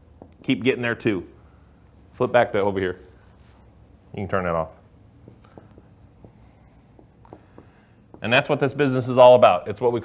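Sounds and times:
marker squeaking on whiteboard: 0:05.1 - 0:09.0.

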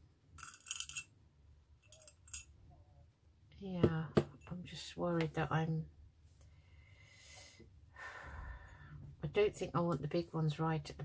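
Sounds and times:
beads clinking: 0:00.3 - 0:01.2, 0:01.8 - 0:02.6.

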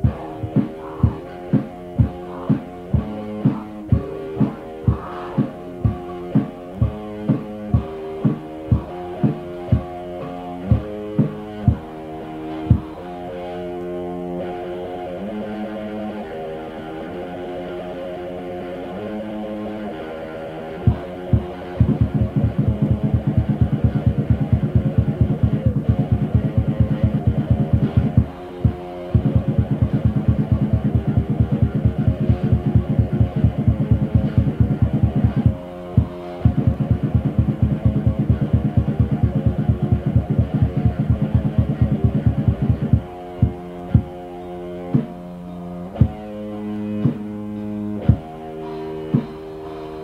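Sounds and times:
muffled death metal band playing: 0:00.0 - 0:50.0.

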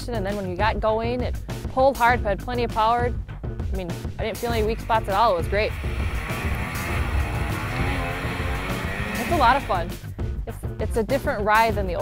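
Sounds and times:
background music: 0:00.0 - 0:12.0
snowmobile engine running: 0:04.4 - 0:09.9.

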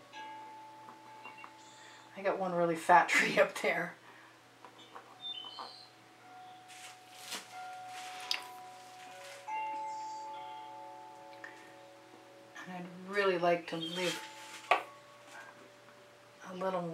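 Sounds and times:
soft chime-like music: 0:00.0 - 0:02.7, 0:04.8 - 0:16.9.

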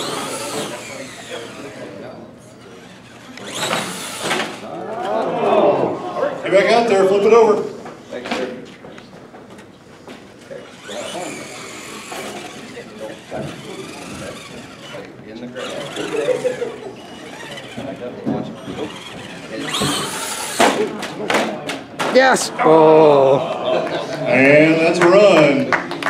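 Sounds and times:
toy truck motor whining: 0:00.0 - 0:05.2, 0:10.5 - 0:20.9.

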